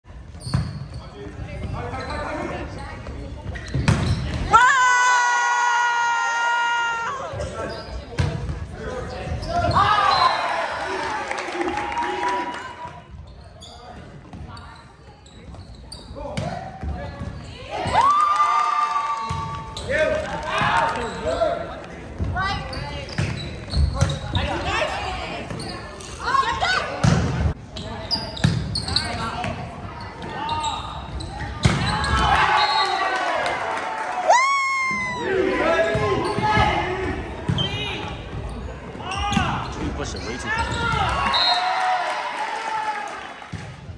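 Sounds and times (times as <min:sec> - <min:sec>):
volleyball bouncing on gym floor: 0:22.2 - 0:24.5, 0:31.3 - 0:32.4.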